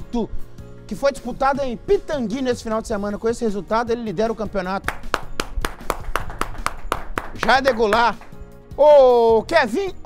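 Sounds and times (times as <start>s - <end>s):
hand claps: 4.8s - 8.4s.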